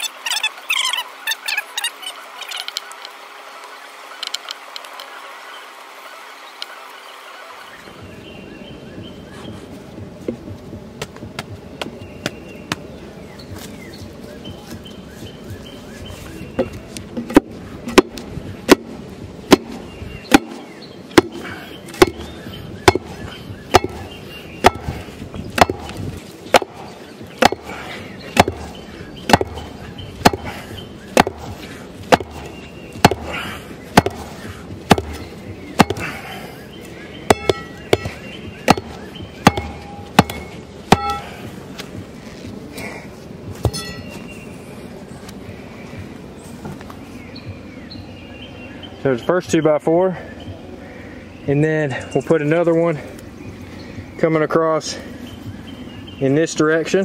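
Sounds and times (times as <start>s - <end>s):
tamping bar pounding dirt: 16.6s - 36.5s, 37.2s - 42.0s, 43.6s - 44.2s.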